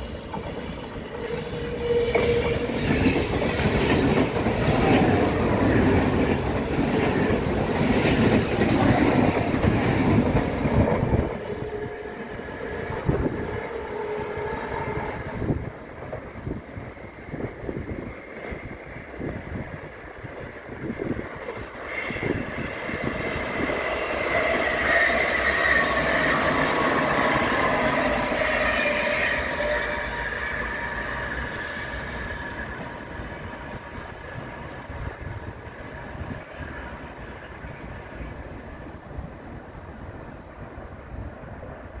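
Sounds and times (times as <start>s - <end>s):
train whine dropping in pitch: 0.0s - 15.7s, 16.4s - 36.3s
electric train passing: 0.0s - 42.0s
wheels rumbling on rails: 0.0s - 42.0s.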